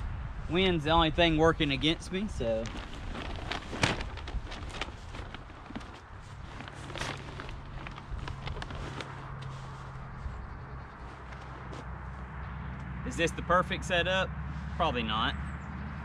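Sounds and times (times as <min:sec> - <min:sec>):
leaves crackling and rustling: 0:01.8 - 0:11.8.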